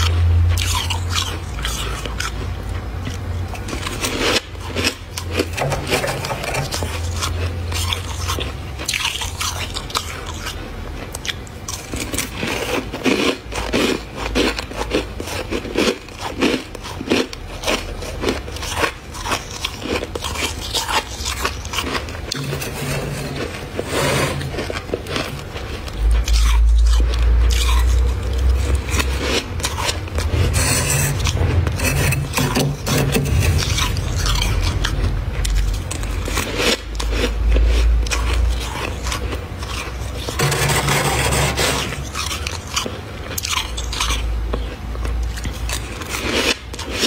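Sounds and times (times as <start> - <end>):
metal spoon scraping frost: 3.5 - 10.6, 11.7 - 44.7
low rumble: 25.6 - 38.7.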